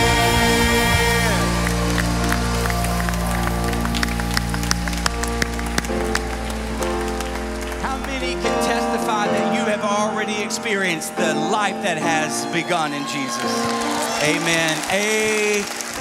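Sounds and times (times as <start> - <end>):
people singing: 0.0 - 2.1
scattered clapping: 1.4 - 9.2, 13.4 - 16.0.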